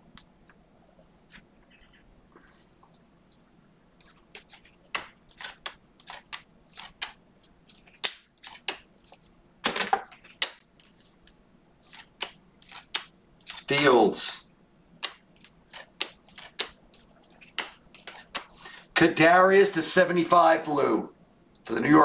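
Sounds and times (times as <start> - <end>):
scraping rustle of cards: 4.0 - 9.3, 11.8 - 13.8, 15.1 - 18.9
cards clicking and swishing: 4.0 - 14.0, 15.0 - 18.8.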